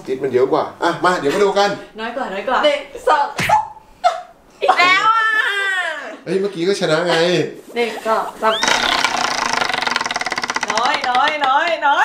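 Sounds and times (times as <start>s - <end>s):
girl squealing: 4.9s - 6.1s, 8.4s - 9.1s
prize wheel clicking: 8.6s - 11.5s.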